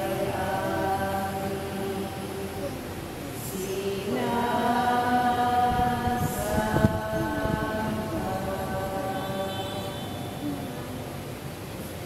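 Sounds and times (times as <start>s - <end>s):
congregation singing worship song: 0.0s - 10.4s.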